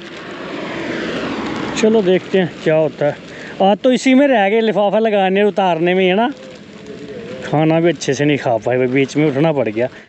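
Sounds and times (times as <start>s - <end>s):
wind rushing: 0.0s - 3.6s
plastic sheet rustling: 0.0s - 10.0s.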